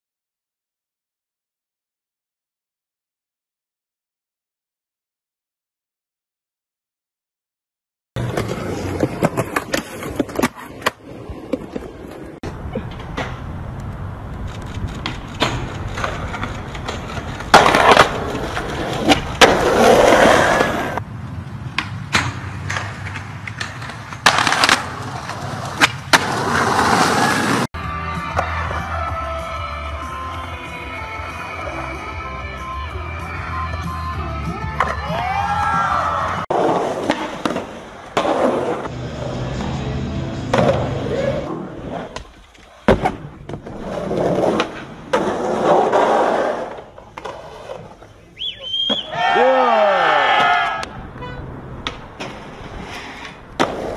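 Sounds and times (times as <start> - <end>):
skateboard wooden clacks: 8.2 - 21.0, 21.7 - 27.6
skateboard wheels on concrete: 8.2 - 53.9.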